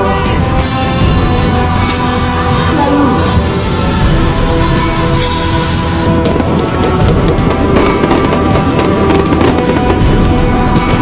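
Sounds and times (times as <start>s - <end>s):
loud music with steady beat: 0.0s - 11.0s
fireworks popping and crackling: 6.1s - 11.0s.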